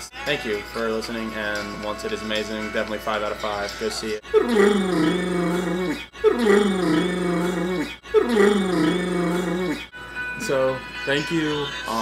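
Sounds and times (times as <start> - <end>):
low groaning voice-like sound: 4.5 - 9.8.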